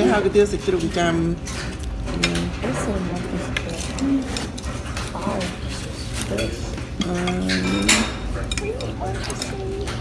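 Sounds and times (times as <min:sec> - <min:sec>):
utensils clinking on ceramic bowl: 0:00.0 - 0:10.0.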